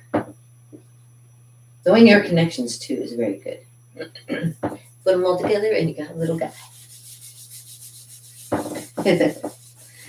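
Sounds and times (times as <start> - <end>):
eraser wiping whiteboard: 6.2 - 10.0.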